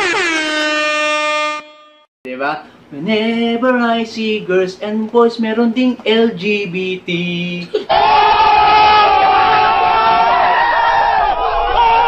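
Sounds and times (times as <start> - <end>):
buzzy horn-like tone: 0.0 - 2.1.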